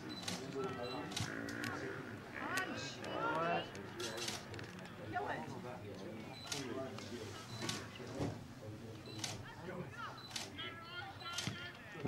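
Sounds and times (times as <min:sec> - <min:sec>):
distant voices calling out: 0:00.0 - 0:05.5.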